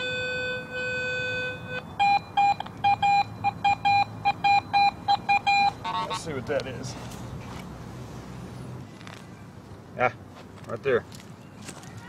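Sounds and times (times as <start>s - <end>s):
metal detector short high beeps: 0.0s - 5.8s.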